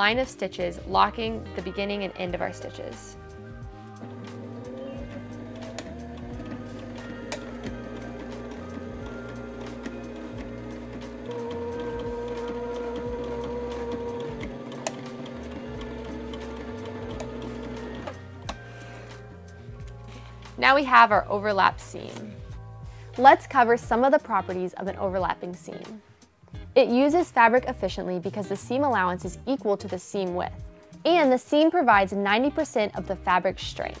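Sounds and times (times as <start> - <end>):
sewing machine stitching: 3.9 - 18.6.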